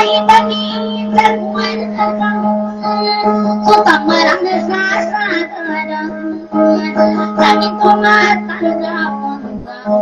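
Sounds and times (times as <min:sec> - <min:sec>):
high voice singing: 0:00.0 - 0:10.0
plucked string accompaniment: 0:00.0 - 0:10.0.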